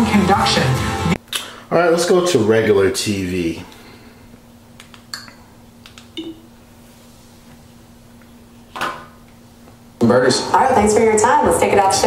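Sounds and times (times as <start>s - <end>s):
faint steady hum: 1.1s - 12.0s.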